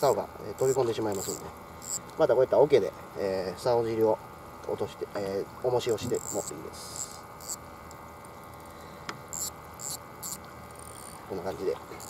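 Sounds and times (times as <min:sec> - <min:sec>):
fishing reel clicks: 0:00.0 - 0:02.0, 0:05.9 - 0:07.6, 0:09.3 - 0:11.2
air pump humming: 0:00.0 - 0:12.0.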